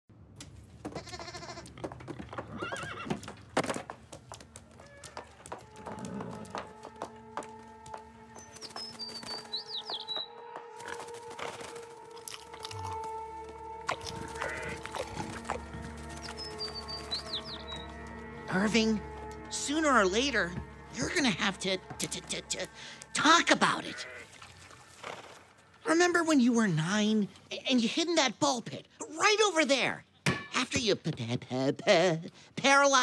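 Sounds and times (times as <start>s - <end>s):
cartoon animals bleating: 1.0s - 1.6s, 13.9s - 15.2s
soft background music: 4.6s - 27.2s.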